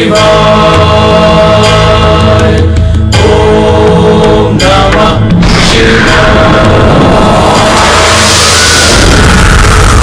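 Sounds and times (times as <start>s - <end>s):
steady low drone: 2.6s - 10.0s
loud swelling whoosh: 5.1s - 10.0s.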